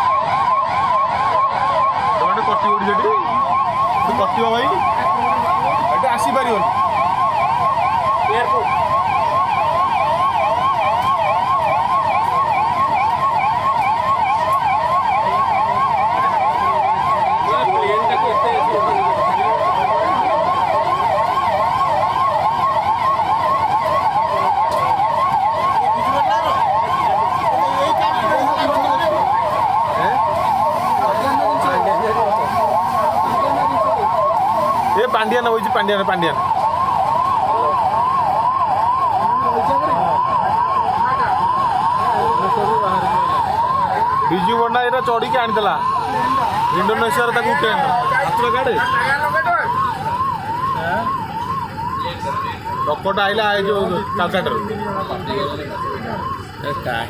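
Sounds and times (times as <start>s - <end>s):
murmur of voices: 0.0s - 35.1s, 36.2s - 57.0s
police sirens wailing: 0.0s - 57.0s
traffic noise: 0.0s - 57.0s.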